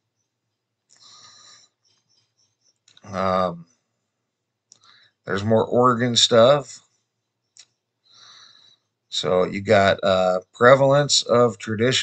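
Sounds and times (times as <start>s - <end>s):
man's short breath: 1.0s - 1.8s, 8.1s - 8.9s.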